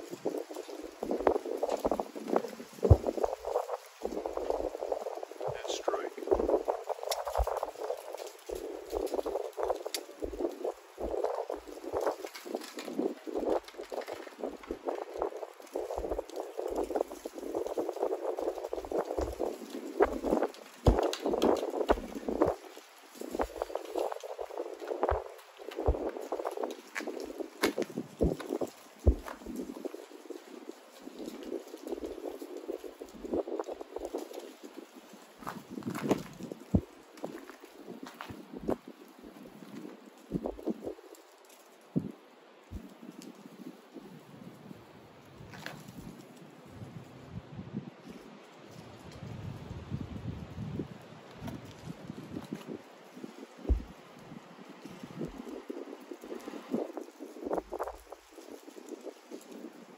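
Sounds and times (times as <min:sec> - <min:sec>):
rustling and crackling tinder: 0:00.0 - 0:59.9.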